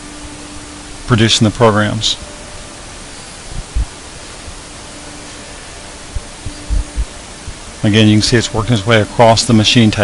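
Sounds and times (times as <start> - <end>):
cnc router spindle hiss: 0.0 - 10.0
short low thumps: 3.5 - 4.0, 6.1 - 7.6.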